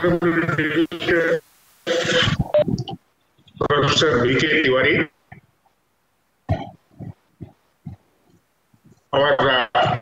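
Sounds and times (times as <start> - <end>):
man's voice over video call: 0.0 - 5.4, 9.0 - 10.0.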